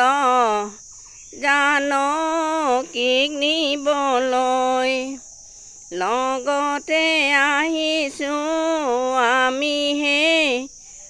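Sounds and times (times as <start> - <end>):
high insect trill: 0.0 - 11.0
woman singing unaccompanied: 0.0 - 11.0.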